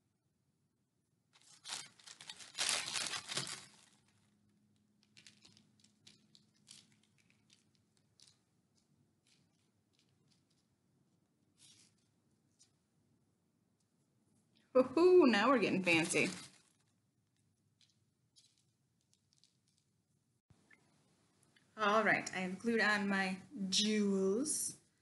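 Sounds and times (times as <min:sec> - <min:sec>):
crackly rustling of paper: 0:01.3 - 0:12.8, 0:15.7 - 0:20.1.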